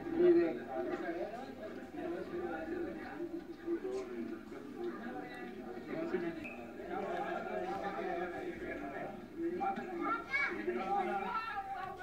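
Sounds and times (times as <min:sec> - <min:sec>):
voices talking from tv speaker: 0:00.0 - 0:12.0.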